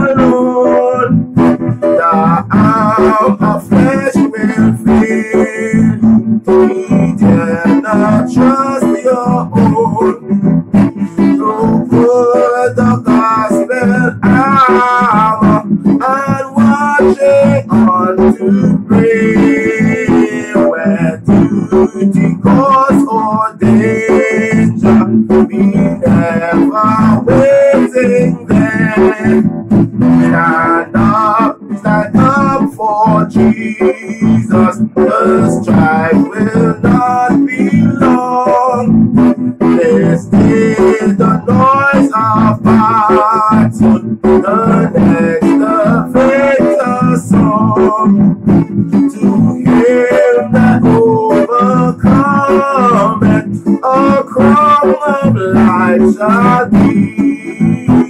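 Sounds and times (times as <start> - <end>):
man singing a hymn: 0.0 - 58.0
strummed acoustic guitar: 0.0 - 58.0.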